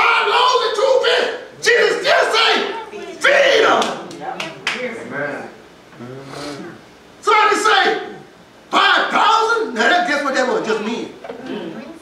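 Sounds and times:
man preaching loudly: 0.0 - 3.8, 7.2 - 11.0.

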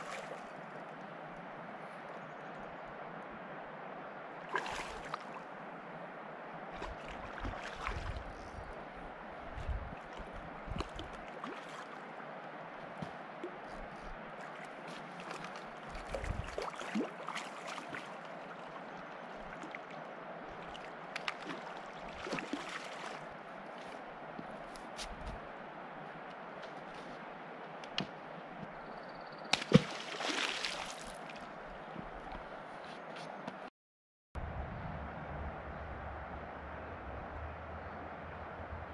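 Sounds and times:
moving water: 0.0 - 33.6
fish splashing in water: 4.5 - 5.4, 20.7 - 23.2, 29.5 - 31.4.

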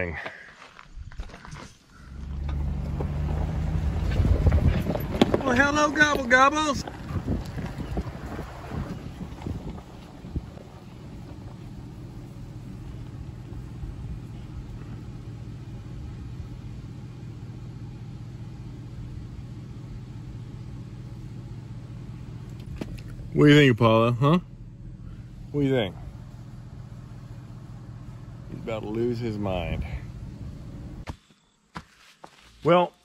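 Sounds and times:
car engine humming: 1.8 - 31.1.

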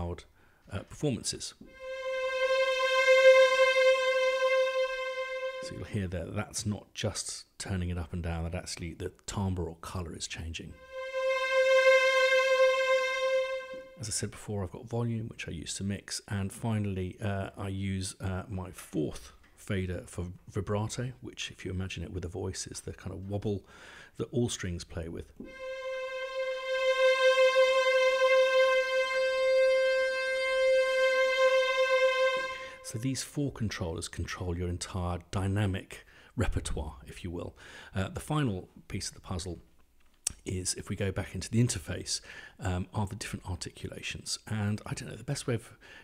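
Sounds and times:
string ensemble held note: 1.7 - 6.2, 10.8 - 14.2, 25.4 - 33.1.

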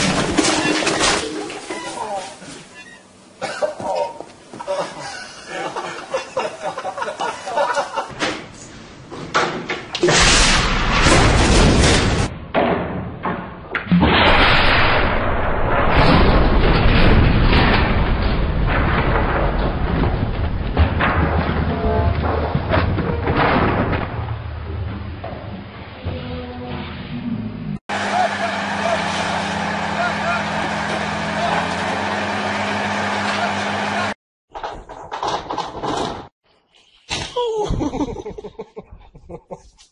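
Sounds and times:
loud blast: 10.0 - 12.4, 13.9 - 22.2
indistinct voices: 27.9 - 31.9
rushing roar: 27.9 - 34.2
truck diesel engine running: 27.9 - 34.2.

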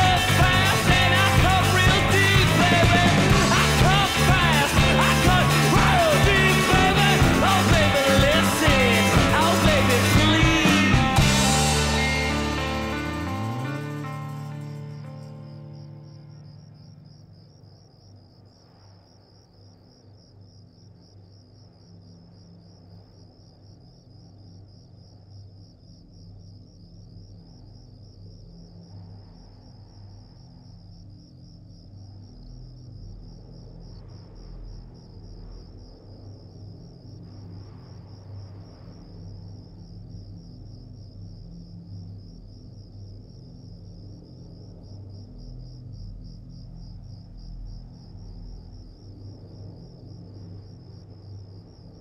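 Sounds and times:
song ending: 0.0 - 16.0
crickets chirping: 0.0 - 52.0
low droning hum: 0.0 - 52.0.

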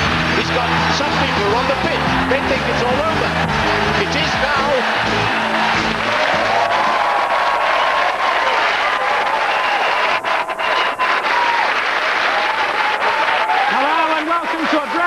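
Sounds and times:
studio audience applauding: 0.0 - 15.0.

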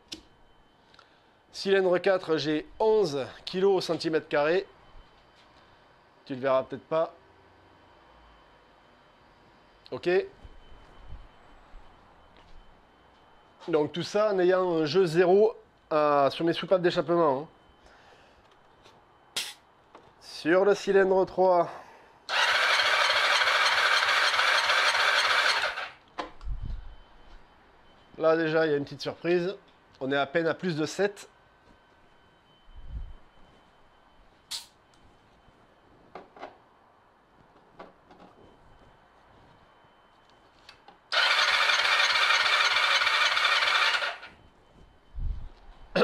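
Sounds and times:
sharp click of a tester: 19.4 - 19.6, 34.5 - 34.8
engine cranking by starter: 22.3 - 26.0, 41.1 - 44.3.

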